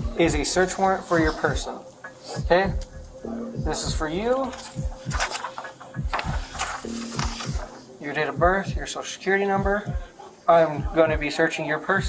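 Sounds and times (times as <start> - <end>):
background music with bass beat: 0.0 - 12.0
clothing rustling on microphone: 0.4 - 2.7, 4.1 - 7.9.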